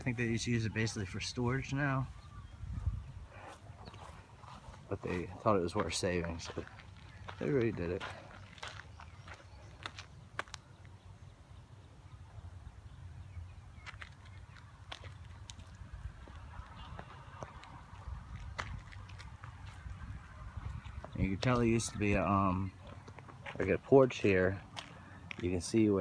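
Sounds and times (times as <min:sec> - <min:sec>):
wind rumble on microphone: 0:02.1 - 0:04.1, 0:15.2 - 0:22.3
faint footstep clicks: 0:03.9 - 0:11.0, 0:13.8 - 0:20.0, 0:22.8 - 0:23.7, 0:24.7 - 0:25.6.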